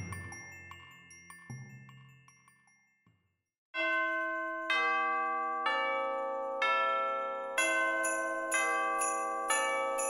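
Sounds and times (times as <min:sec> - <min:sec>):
bell-like chimes in music: 0:00.0 - 0:10.0.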